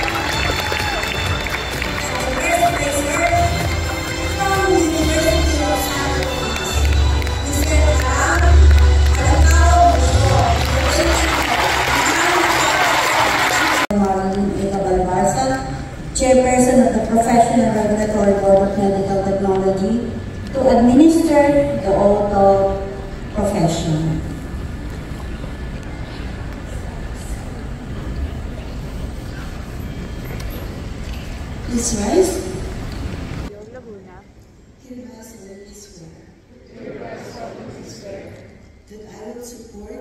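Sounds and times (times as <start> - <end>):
audience applauding: 0.0 - 4.1, 6.0 - 13.9
music: 0.0 - 13.9
low rumble of auditorium noise: 0.0 - 40.0.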